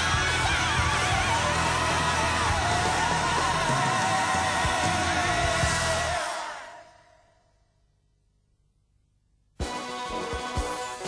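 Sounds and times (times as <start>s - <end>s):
pop music with singing: 0.0s - 7.0s, 9.6s - 11.0s.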